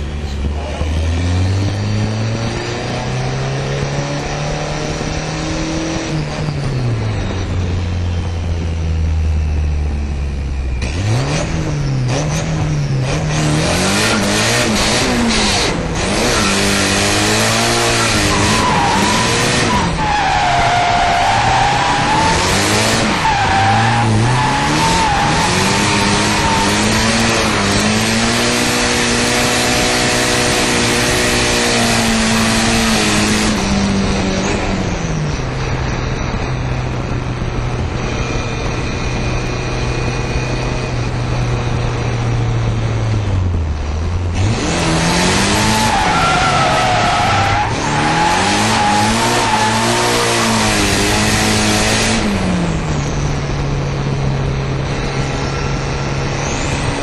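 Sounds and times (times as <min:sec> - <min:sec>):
car engine revving: 0:00.0 - 0:57.0
tyre squeal: 0:16.1 - 0:27.9, 0:45.5 - 0:51.6.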